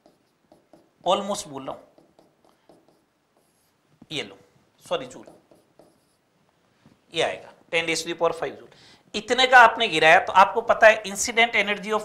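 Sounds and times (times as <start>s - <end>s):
pen writing on a board: 0.0s - 3.8s, 5.2s - 6.2s.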